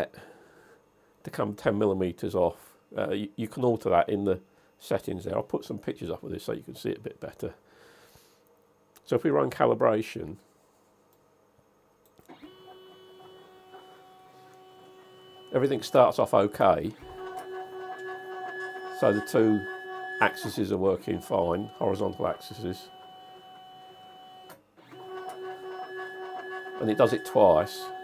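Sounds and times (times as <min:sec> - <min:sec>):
stepper motors whining: 0:12.3 - 0:24.2.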